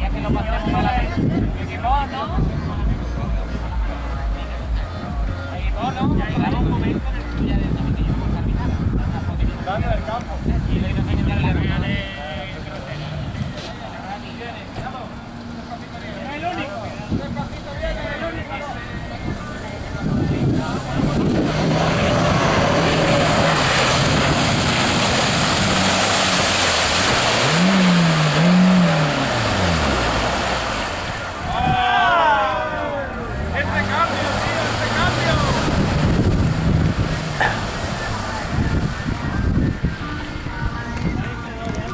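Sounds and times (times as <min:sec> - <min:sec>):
off-road vehicle engine revving: 0:00.0 - 0:41.9
voices calling out: 0:12.3 - 0:41.9
loud rushing noise: 0:19.9 - 0:41.9.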